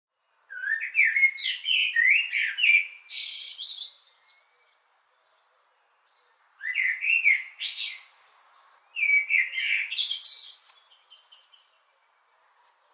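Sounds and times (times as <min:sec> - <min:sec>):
songbird singing: 0:00.1 - 0:12.9.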